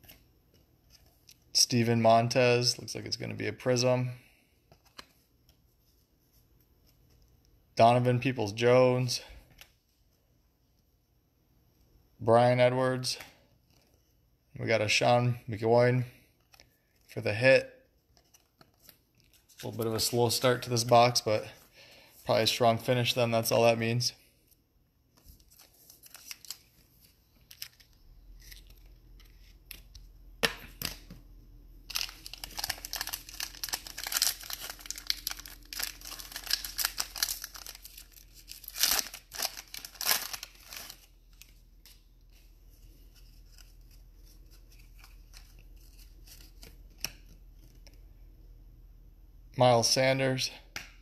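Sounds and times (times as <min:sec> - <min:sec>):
cards rustling: 0:18.0 - 0:21.6, 0:25.2 - 0:30.0, 0:31.9 - 0:48.0
foil wrapper tearing and crinkling: 0:31.9 - 0:41.1.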